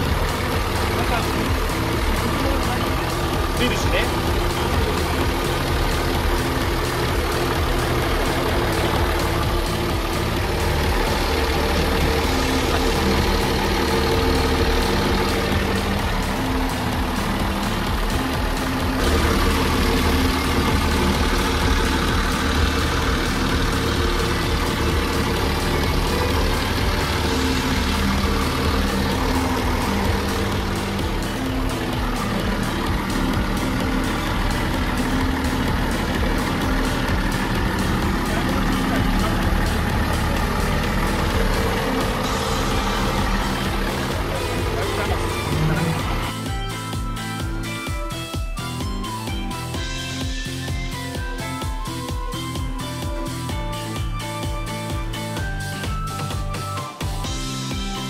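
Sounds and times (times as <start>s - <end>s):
marine diesel engine idling: 0.0s - 58.0s.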